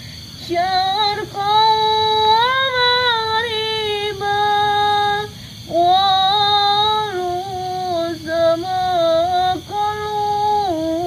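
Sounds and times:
woman singing slow high melody: 0.0s - 11.0s.

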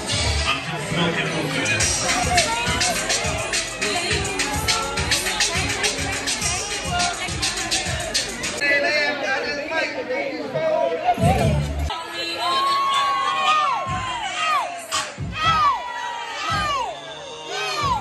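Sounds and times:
club music: 0.0s - 8.6s, 11.1s - 15.9s
crowd cheering and shouting: 0.0s - 18.0s.

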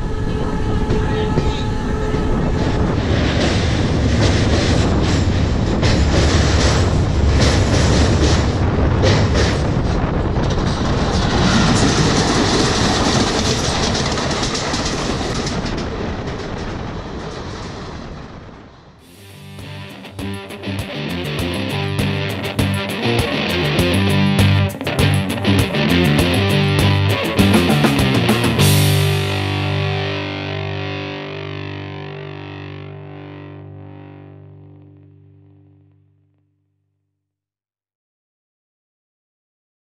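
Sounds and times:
rushing wind: 0.0s - 31.0s
passing train: 0.0s - 31.6s
train wheels clattering on rail joints: 0.7s - 17.9s
distorted electric guitar chord ringing: 19.0s - 36.6s.

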